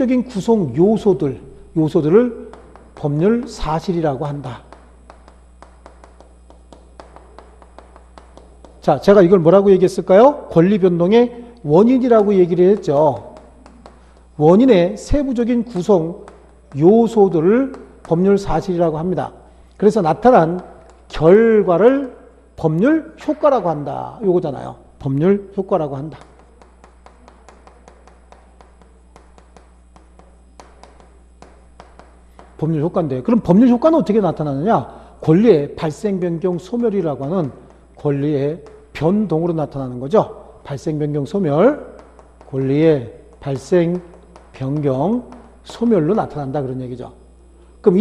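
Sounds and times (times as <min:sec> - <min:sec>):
chalk tapping on chalkboard: 0:00.0 - 0:48.0.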